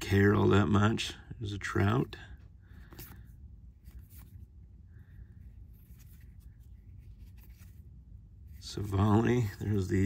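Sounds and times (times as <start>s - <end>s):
trading cards sliding: 5.6s - 7.9s.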